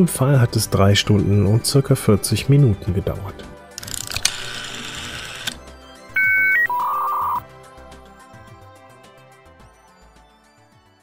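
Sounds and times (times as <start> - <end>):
background music: 0.0 - 11.0
rotary telephone dial whirring: 3.8 - 5.6
electronic telephone beeps: 6.2 - 7.4.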